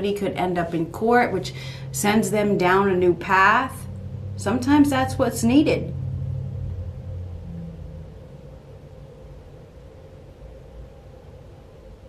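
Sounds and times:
faint steady hum: 0.0 - 12.0
low rumble: 0.0 - 12.0.

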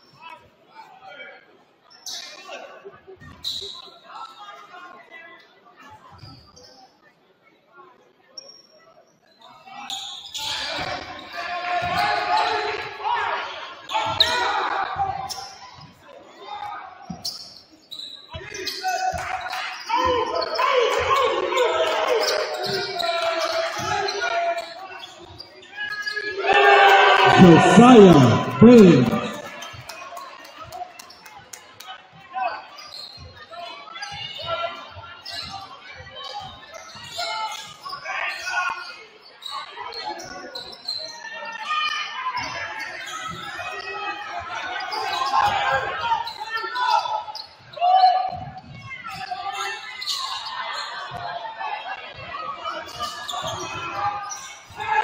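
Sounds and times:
voices in a gymnasium: 0.0 - 55.0
loud burst of shouting: 26.4 - 29.5.

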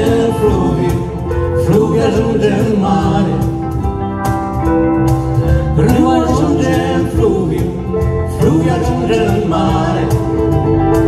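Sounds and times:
bass guitar: 0.0 - 11.0
electric guitar: 0.0 - 11.0.

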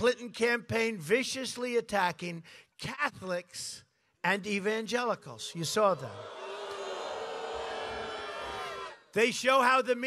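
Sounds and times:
large crowd cheering din: 5.8 - 9.1.

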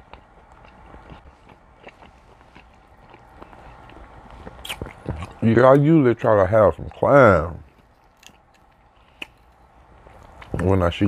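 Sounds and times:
chewing mouth clicks and smacks: 0.0 - 5.8, 7.6 - 10.8.

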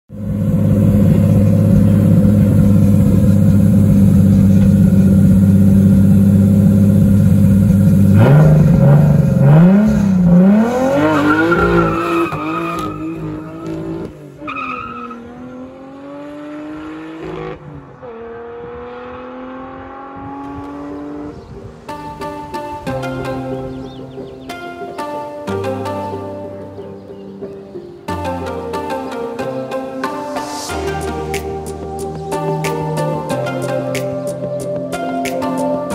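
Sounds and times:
car engine revving: 0.1 - 22.3.

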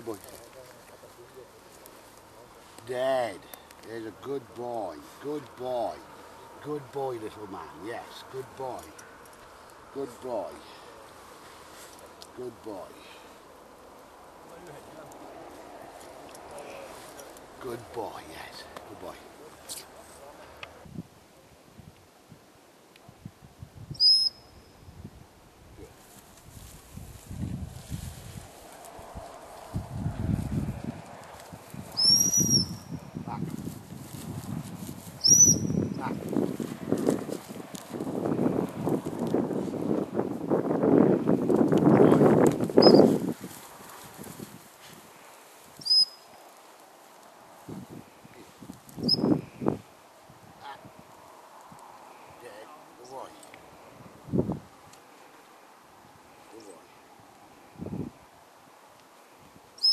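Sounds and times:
rustling and crackling: 0.0 - 20.8, 25.8 - 32.0, 33.4 - 35.2, 35.9 - 40.2, 41.4 - 49.0
dog whistle blast: 24.0 - 24.6, 32.0 - 32.9, 35.2 - 35.8
short high chirps: 24.0 - 24.9, 32.0 - 33.0, 35.2 - 36.0, 42.8 - 43.0, 45.8 - 46.3, 49.0 - 49.3.

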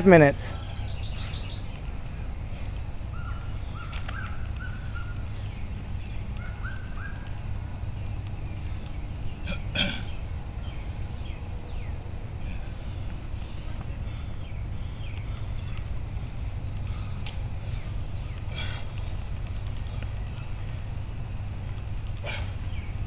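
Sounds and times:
birds calling: 0.0 - 23.0
low background rumble: 0.0 - 23.0.

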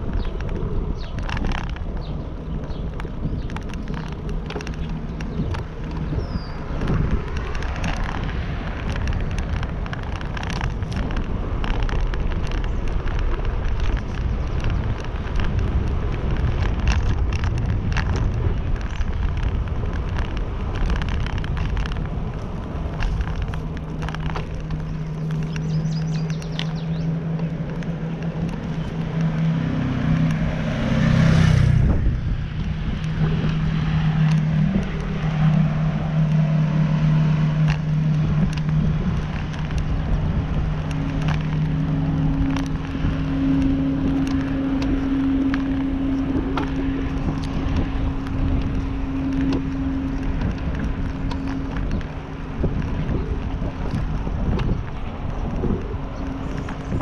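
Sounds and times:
vehicle engine rumble: 0.0 - 57.0.

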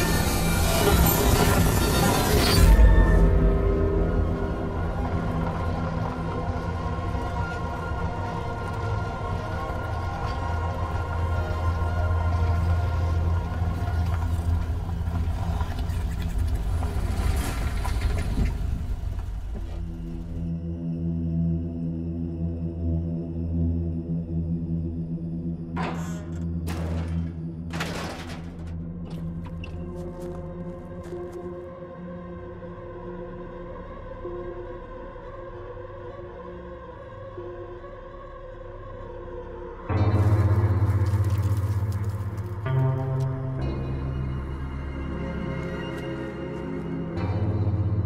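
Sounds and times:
eerie droning music: 0.0 - 48.0.

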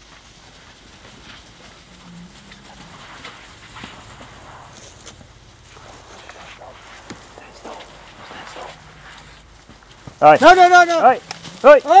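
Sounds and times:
elephants shuffling steps: 0.0 - 12.0.

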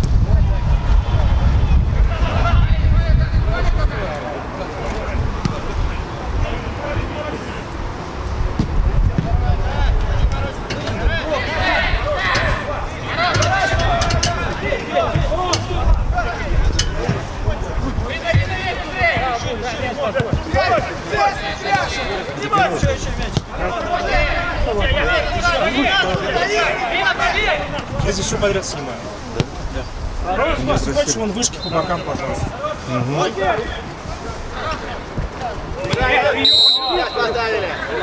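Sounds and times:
players calling out: 3.6 - 38.0
football kick thud: 8.6 - 9.5.

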